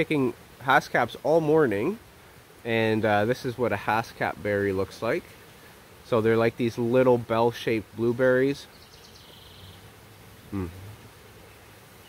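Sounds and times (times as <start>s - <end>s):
flying insect buzzing: 0.0s - 12.0s.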